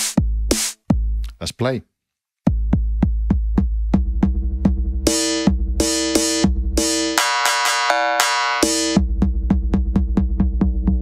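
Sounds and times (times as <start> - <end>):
drum machine beats: 0.0 - 1.4, 2.4 - 11.0
deep low throb: 2.6 - 7.0, 9.0 - 11.0.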